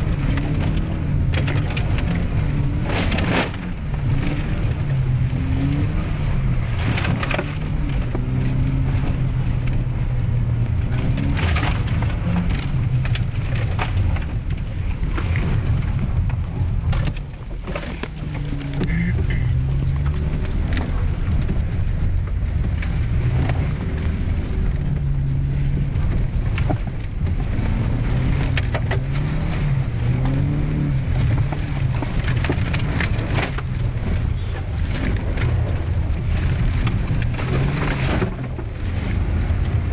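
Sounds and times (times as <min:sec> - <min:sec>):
car engine running under load: 0:00.0 - 0:39.9
mud spattering car underside: 0:00.0 - 0:39.9
slush splashing windshield: 0:00.0 - 0:39.9.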